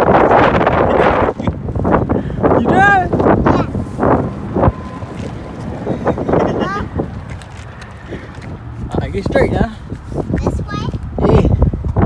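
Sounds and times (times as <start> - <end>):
wind buffeting microphone: 0.0 - 12.0
young child vocalizing: 3.4 - 4.0.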